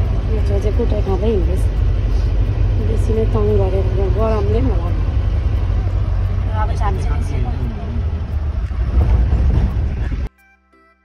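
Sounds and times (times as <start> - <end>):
vehicle road noise from inside: 0.0 - 10.3.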